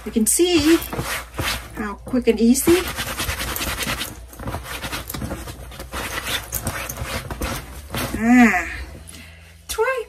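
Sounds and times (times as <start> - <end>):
cloth scrubbing fabric: 0.0 - 8.6.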